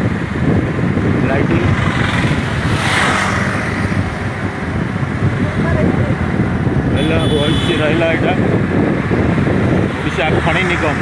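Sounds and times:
vehicle road and engine rumble: 0.0 - 11.0
car passing close by: 1.6 - 4.3.

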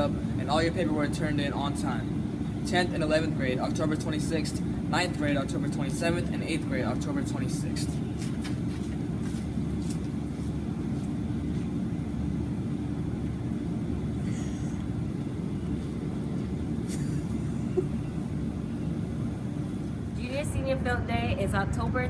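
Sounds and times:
faint steady hum: 0.0 - 22.0
low outdoor rumble: 0.0 - 22.0.

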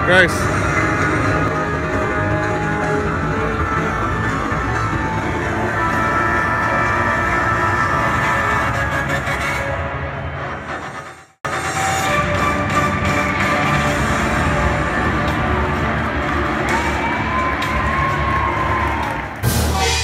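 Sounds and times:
music playing: 0.0 - 20.0
stadium crowd noise: 0.0 - 20.0.

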